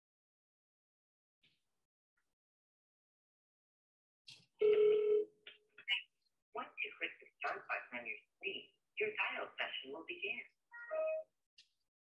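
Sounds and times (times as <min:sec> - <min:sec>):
telephone beep: 0:04.6 - 0:05.3.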